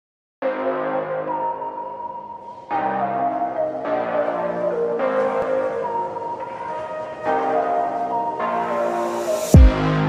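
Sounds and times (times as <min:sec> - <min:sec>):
sustained chords music: 0:00.4 - 0:10.0.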